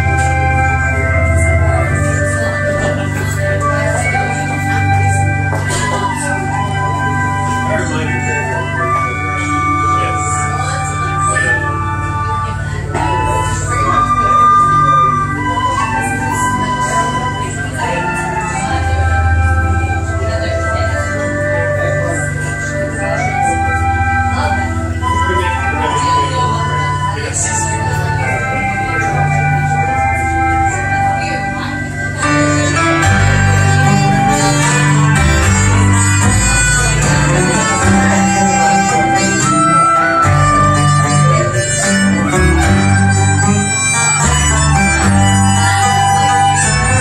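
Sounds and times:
pulsing bass notes: 0:00.0 - 0:47.0
tenor banjo: 0:00.0 - 0:47.0
tin whistle: 0:00.0 - 0:47.0
traditional band playing: 0:00.0 - 0:47.0
button accordion: 0:28.4 - 0:47.0.

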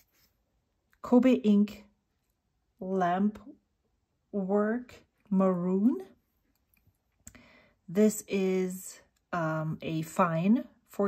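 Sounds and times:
faint soft breath: 0:07.3 - 0:07.9.

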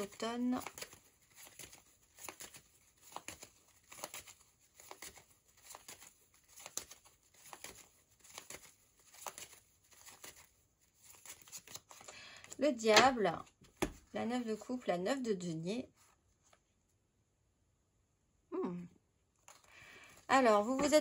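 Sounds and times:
cards being shuffled: 0:00.0 - 0:14.2, 0:19.4 - 0:21.0.

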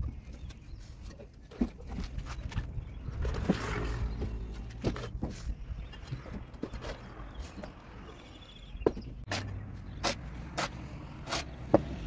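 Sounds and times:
trowel scraping: 0:09.2 - 0:12.0.

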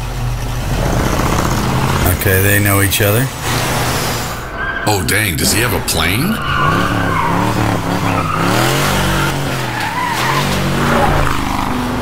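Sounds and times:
car engine revving: 0:00.0 - 0:12.0
tyres skidding and squealing: 0:00.2 - 0:12.0.

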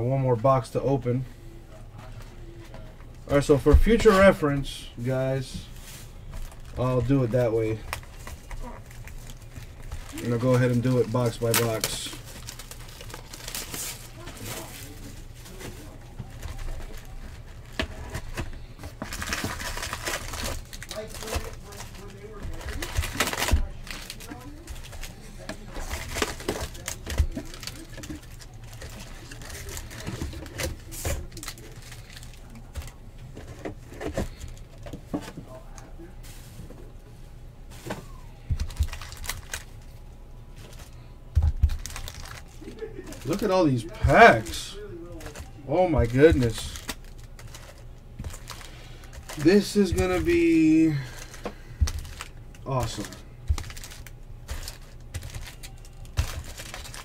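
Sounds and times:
low steady hum: 0:00.0 - 0:57.0
foil packs crinkling: 0:02.0 - 0:35.0, 0:37.7 - 0:57.0.

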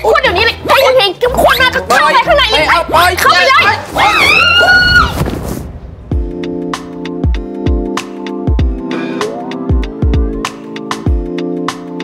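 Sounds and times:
woman screaming: 0:04.0 - 0:05.2
noisy rustle: 0:05.0 - 0:06.1.

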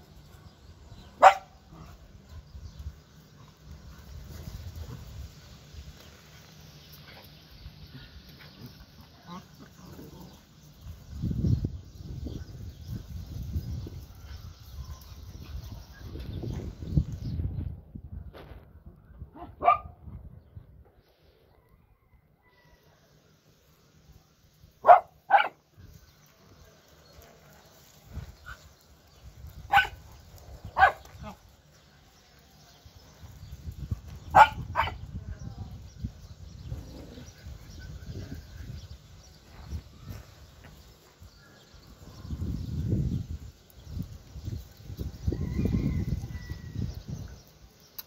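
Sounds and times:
small dogs barking: 0:01.2 - 0:02.0, 0:19.3 - 0:20.0, 0:24.8 - 0:25.6, 0:29.6 - 0:31.4, 0:34.3 - 0:35.1.

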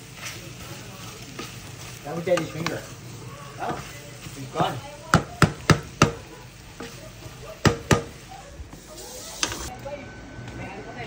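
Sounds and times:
wooden spatula knocking metal pan: 0:05.1 - 0:06.2, 0:07.6 - 0:08.2.

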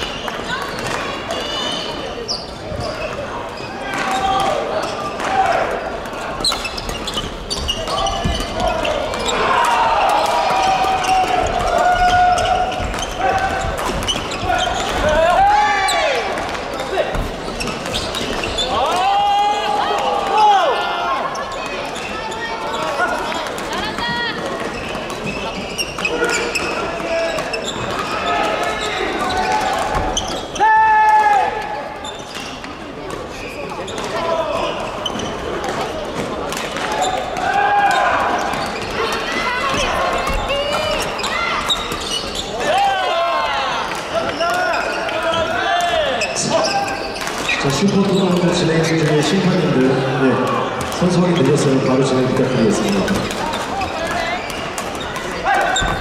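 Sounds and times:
sneakers squeaking on wooden floor: 0:00.0 - 0:19.0, 0:21.2 - 0:43.0, 0:43.8 - 0:56.0
murmur of voices: 0:00.0 - 0:56.0.

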